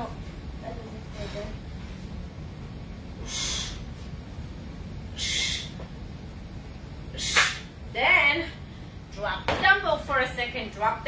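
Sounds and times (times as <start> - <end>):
steady low hum: 0.0 - 11.0
forceful exhale: 3.2 - 3.9, 5.2 - 5.8.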